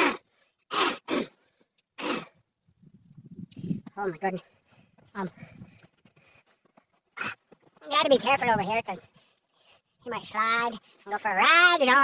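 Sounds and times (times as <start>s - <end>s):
low thudding and rumbling: 2.7s - 4.1s.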